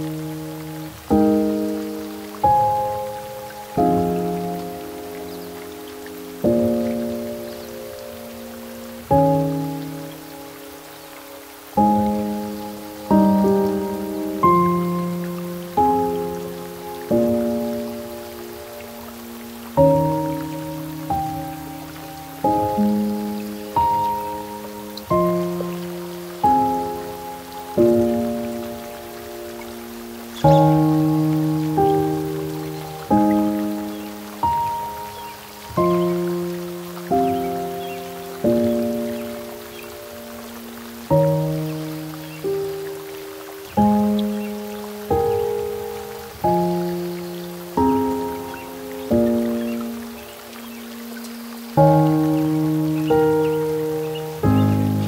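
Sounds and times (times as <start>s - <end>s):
rain: 0.0s - 55.0s
soft solo piano: 0.0s - 55.0s.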